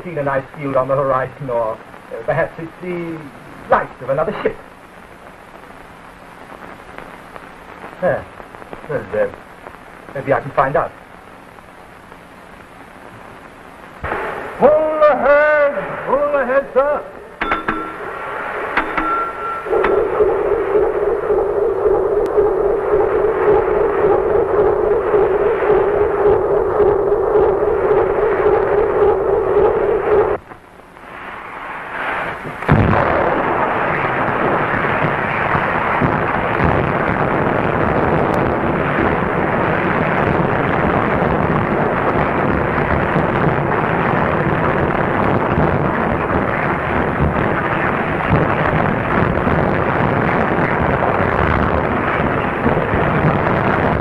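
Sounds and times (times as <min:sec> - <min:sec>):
steady hum with held tone: 0:00.0 - 0:54.0.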